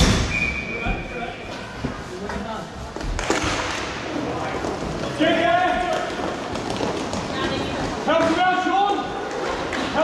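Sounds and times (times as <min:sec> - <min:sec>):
ice hockey play noise in hall: 0:00.0 - 0:10.0.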